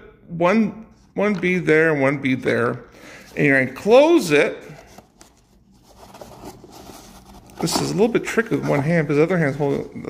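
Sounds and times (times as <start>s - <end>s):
cardboard egg carton rustling: 4.8s - 10.0s.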